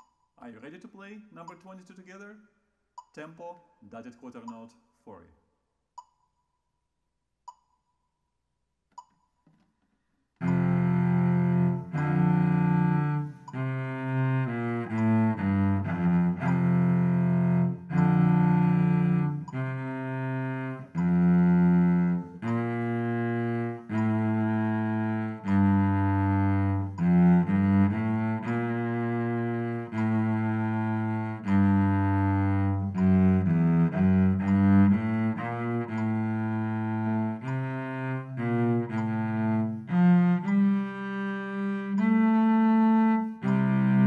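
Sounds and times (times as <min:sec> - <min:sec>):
metronome tick: 0:00.0 - 0:02.3, 0:02.9 - 0:05.0, 0:05.9 - 0:06.6, 0:07.5 - 0:08.1, 0:08.9 - 0:09.5, 0:10.4 - 0:44.0
bowed cello notes: 0:10.4 - 0:44.0.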